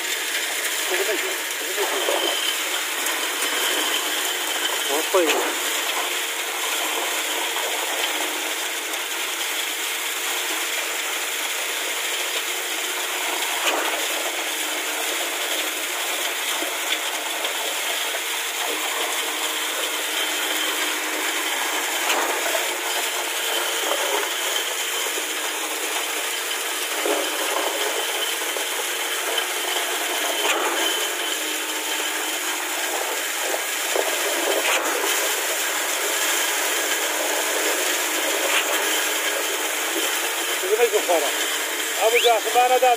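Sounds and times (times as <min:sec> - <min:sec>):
concrete pump rattling: 0:00.0 - 0:42.9.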